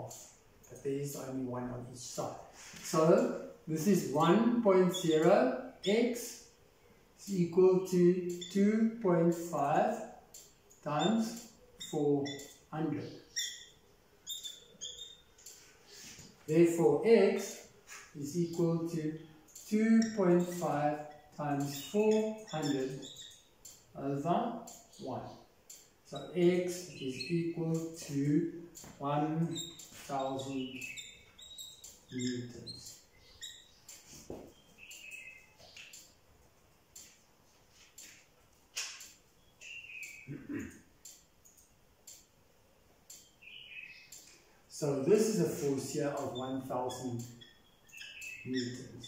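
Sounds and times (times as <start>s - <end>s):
marker squeaking on whiteboard: 2.1s - 6.4s, 7.8s - 36.2s, 37.0s - 41.2s, 45.2s - 49.0s.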